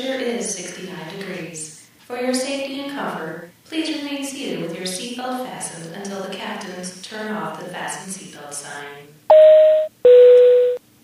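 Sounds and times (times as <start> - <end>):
two-note electronic chime: 9.3 - 10.8.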